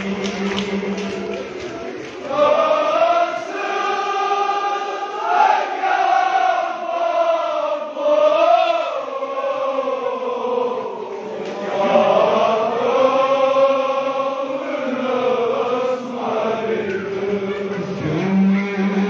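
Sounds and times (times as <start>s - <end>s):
men chanting a lament: 0.0s - 19.0s.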